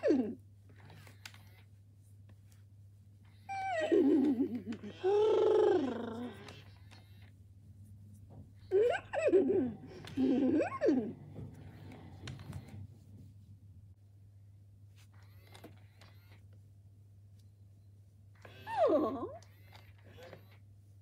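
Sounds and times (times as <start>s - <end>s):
toy pony vocal sounds: 3.5s - 6.6s.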